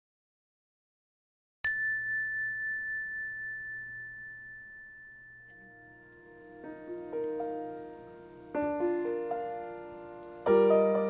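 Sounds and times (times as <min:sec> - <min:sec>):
bell-like logo chime: 0:01.7 - 0:07.4
faint piano notes: 0:05.4 - 0:11.0.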